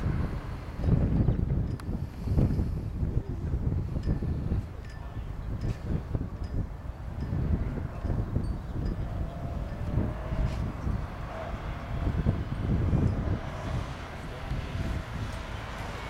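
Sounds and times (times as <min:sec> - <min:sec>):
faint car engine: 0:00.0 - 0:16.0
wind buffeting microphone: 0:00.0 - 0:16.0.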